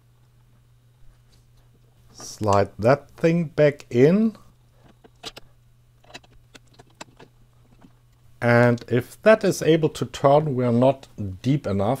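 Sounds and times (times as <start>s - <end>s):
light clicks of metal parts: 4.8s - 8.8s.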